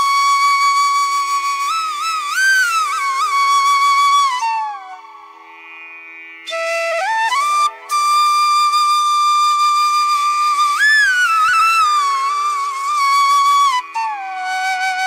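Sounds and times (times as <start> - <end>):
solo flute slow melody: 0.0 - 5.4, 6.5 - 15.0.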